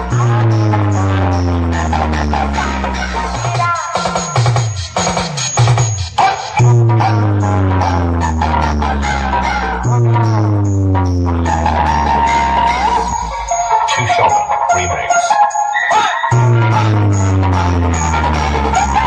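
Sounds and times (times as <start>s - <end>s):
loud electronic dance music: 0.0s - 19.0s.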